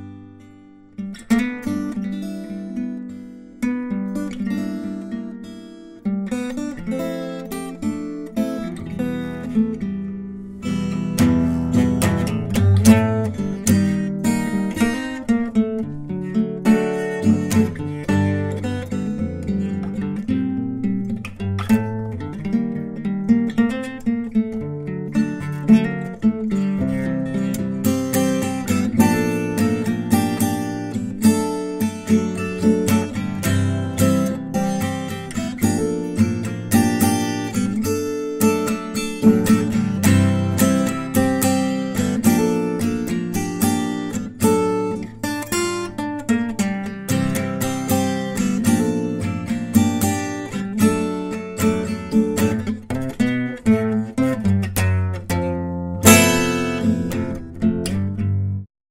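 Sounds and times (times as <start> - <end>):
acoustic guitar music: 0.0 - 58.7.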